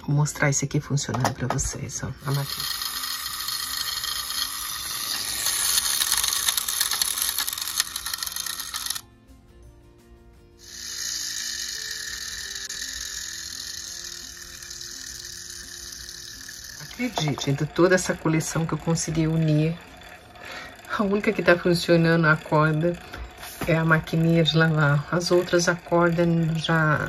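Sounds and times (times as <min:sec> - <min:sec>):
clockwork motor whirring: 0:02.1 - 0:09.1, 0:10.6 - 0:27.0.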